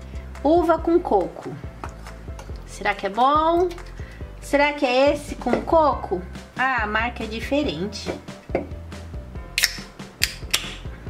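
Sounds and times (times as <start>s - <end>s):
drink can opening clicks: 9.6s - 10.8s.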